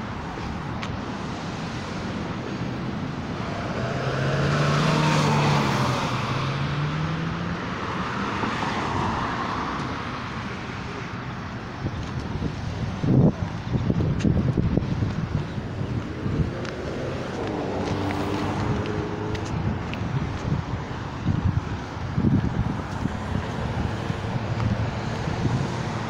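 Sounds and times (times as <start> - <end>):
car passing by: 1.1 - 11.2, 15.8 - 20.6, 22.2 - 26.0.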